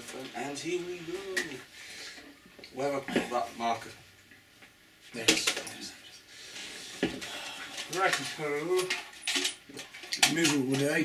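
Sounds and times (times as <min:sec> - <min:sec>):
plastic objects rustling and scraping: 0:00.0 - 0:03.5, 0:05.0 - 0:11.0.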